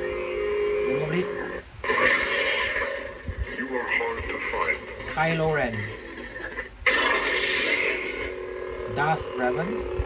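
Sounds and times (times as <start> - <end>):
lightsaber hum: 0.0 - 10.0.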